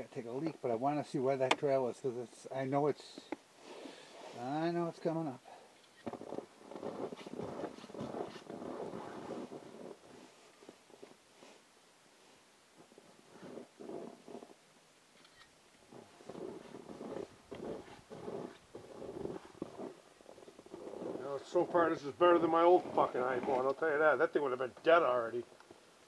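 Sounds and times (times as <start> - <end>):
rustling and scuffing: 6.0 - 11.6, 15.9 - 23.7.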